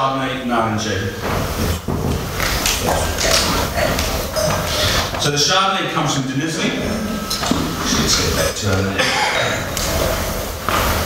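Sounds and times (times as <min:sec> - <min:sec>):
person sniffing through nose: 0:02.4 - 0:05.2.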